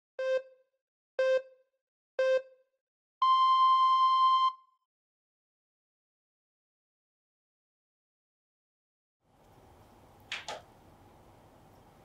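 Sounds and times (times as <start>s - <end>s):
longer higher beep: 3.2s - 4.7s.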